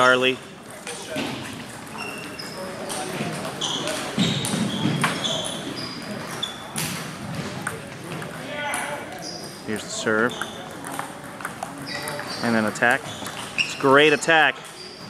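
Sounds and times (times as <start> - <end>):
murmur of voices echoing: 0.0 - 15.0
ping-pong balls clicking: 0.0 - 15.0
high squeaks: 1.9 - 2.8, 3.5 - 6.8, 8.7 - 10.8, 11.7 - 15.0.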